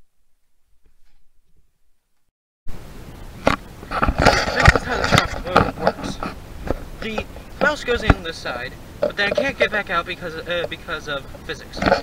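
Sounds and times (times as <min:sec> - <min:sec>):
camera handling knocks and rubbing: 0:03.5 - 0:08.2.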